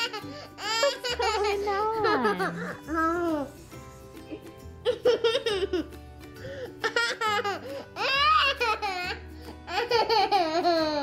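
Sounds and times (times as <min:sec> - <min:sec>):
soft background music: 0:00.0 - 0:11.0
toddler giggling and squealing: 0:06.8 - 0:11.0.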